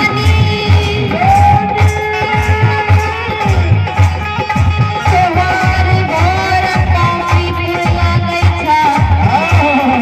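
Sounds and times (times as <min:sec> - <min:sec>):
harmonium: 0:00.0 - 0:10.0
low steady drumbeat: 0:00.0 - 0:10.0.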